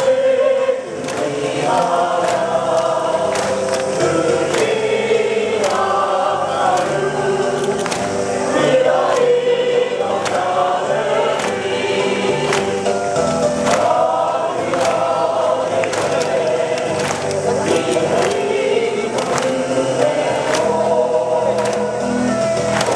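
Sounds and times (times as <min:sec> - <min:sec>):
choir singing over loudspeakers: 0:00.0 - 0:22.9.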